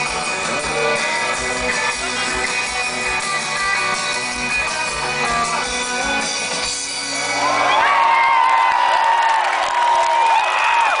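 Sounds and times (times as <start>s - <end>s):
crowd cheering and screaming: 6.9s - 11.0s.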